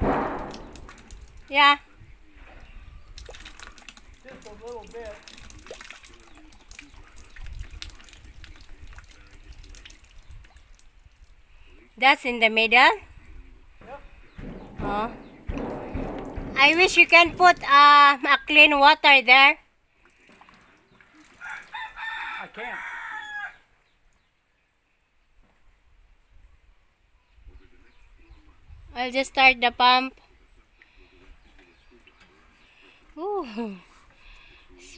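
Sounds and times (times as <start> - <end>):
water dripping and trickling: 0.0 - 12.0, 14.3 - 18.7, 19.9 - 22.0
rooster crowing: 21.4 - 23.7.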